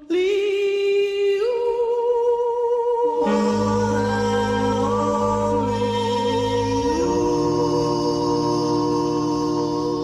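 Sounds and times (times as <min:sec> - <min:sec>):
person humming: 0:03.2 - 0:10.0.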